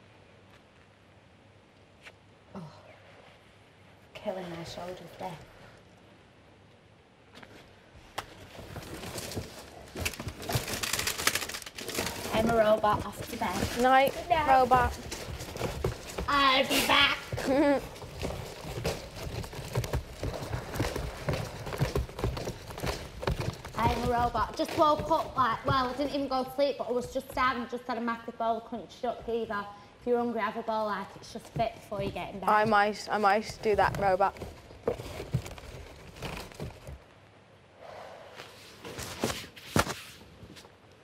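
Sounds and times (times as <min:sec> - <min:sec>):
small movement noises: 0:00.3 - 0:37.4, 0:38.4 - 0:41.0
soft footsteps: 0:11.8 - 0:28.2, 0:29.0 - 0:37.1
soft breathy exhale: 0:37.8 - 0:38.7.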